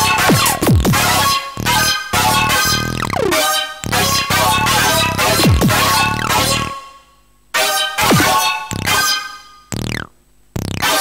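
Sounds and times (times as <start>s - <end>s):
glitchy electronic music: 2.8s - 6.4s, 8.1s - 9.0s, 9.8s - 11.0s
downward synth pitch sweeps: 3.0s - 3.5s.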